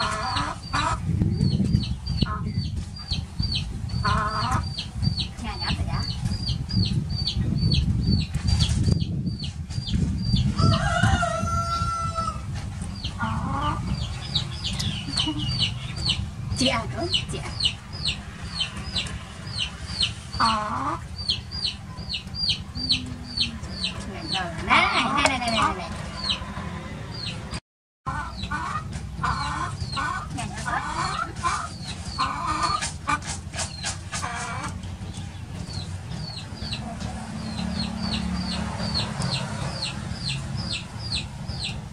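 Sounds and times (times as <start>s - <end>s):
chicks peeping: 0.0s - 41.9s
constant low rumble: 0.0s - 41.9s
rooster crowing: 10.6s - 12.5s
steady low hum: 12.4s - 27.6s
high falling chirps: 21.3s - 24.6s
brief wavering call: 22.7s - 23.9s.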